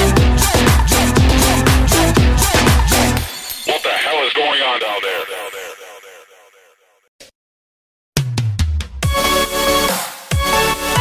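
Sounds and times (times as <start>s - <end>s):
sped-up high voice syllables: 3.8s - 6.6s.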